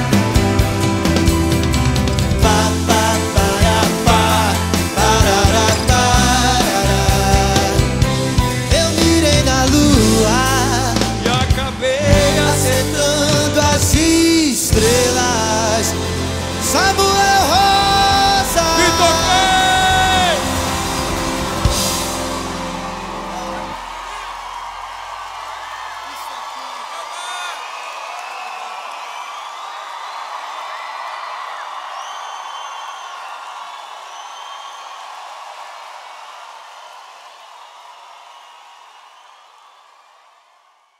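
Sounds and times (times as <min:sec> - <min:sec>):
live pop-rock band: 0:00.0 - 0:24.6
crowd cheering and applauding: 0:00.0 - 0:40.9.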